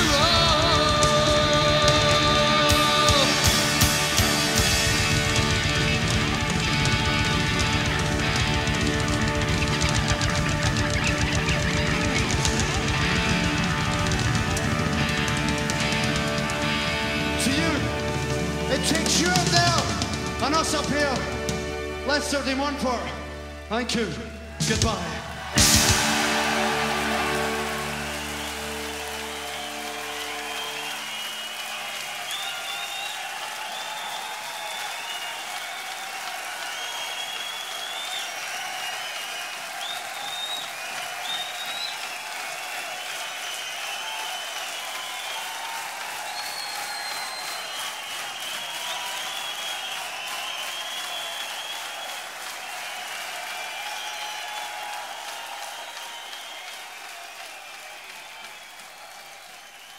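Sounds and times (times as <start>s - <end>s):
audience applauding and cheering: 0.0s - 59.9s.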